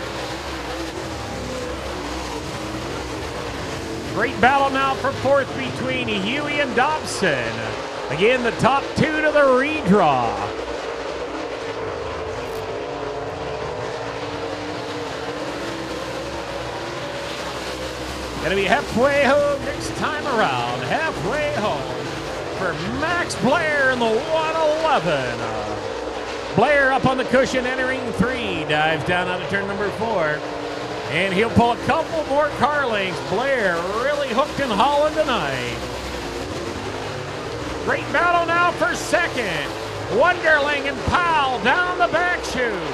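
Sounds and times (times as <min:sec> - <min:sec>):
race car engines running flat out: 0:00.0 - 0:42.9
announcer speaking over pa: 0:04.1 - 0:10.6, 0:18.4 - 0:25.9, 0:26.5 - 0:35.8, 0:37.8 - 0:42.9.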